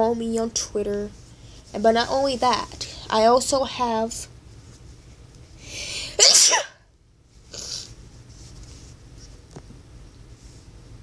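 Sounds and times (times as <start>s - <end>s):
girl sneezing: 5.9s - 6.9s.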